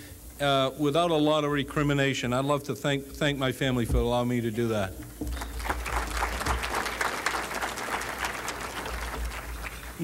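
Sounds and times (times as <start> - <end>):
audience applauding: 5.3 - 10.0.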